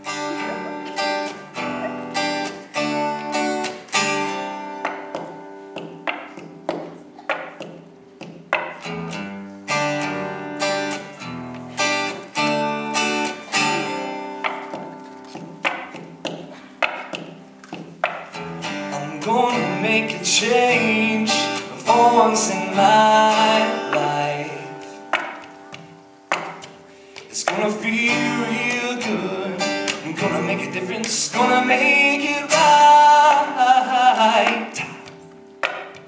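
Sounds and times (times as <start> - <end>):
acoustic guitar strumming: 0.0 - 36.0.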